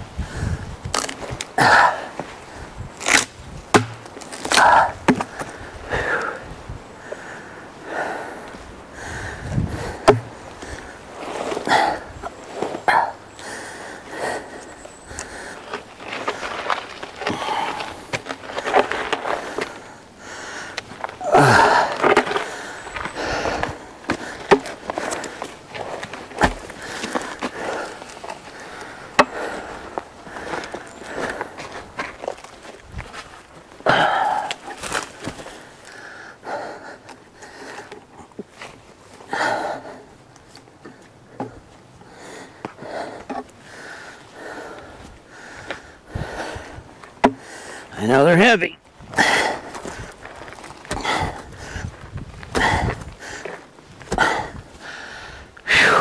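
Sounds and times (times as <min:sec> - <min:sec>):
man breathing hard: 0:00.2 - 0:00.7, 0:04.7 - 0:12.2, 0:12.9 - 0:16.6, 0:17.2 - 0:31.8, 0:33.8 - 0:38.2, 0:39.3 - 0:40.2, 0:40.8 - 0:48.0, 0:49.1 - 0:56.0
logs knocking and scraping ground: 0:03.0 - 0:06.3, 0:09.5 - 0:13.2, 0:14.2 - 0:20.0, 0:20.7 - 0:36.0, 0:39.9 - 0:41.8, 0:42.5 - 0:55.1
footsteps: 0:15.2 - 0:20.0.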